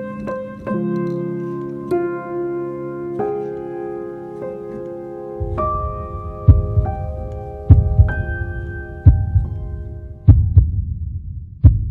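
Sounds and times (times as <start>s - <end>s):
held music notes: 0.0s - 10.5s
heartbeat double thumps: 5.4s - 11.9s.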